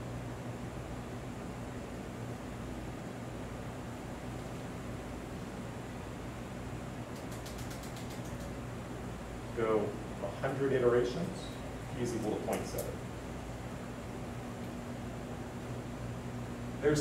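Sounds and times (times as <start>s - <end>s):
ventilation hiss: 0.0s - 17.0s
faint high ticks: 7.1s - 8.6s.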